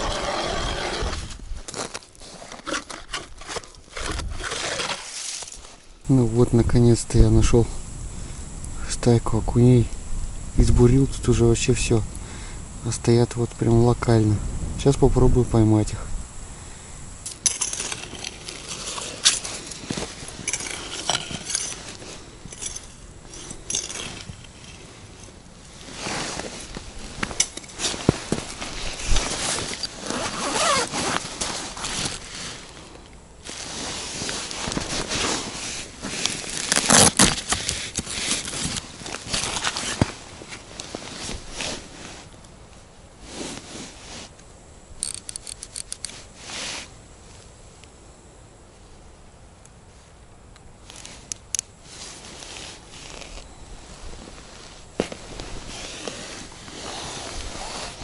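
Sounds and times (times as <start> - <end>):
zipper opening: 0.0 - 1.4, 2.3 - 5.2, 28.8 - 32.2, 55.6 - 58.0
gloves rustling against rod case: 0.0 - 5.9, 17.3 - 42.5, 45.0 - 46.9, 50.8 - 58.0.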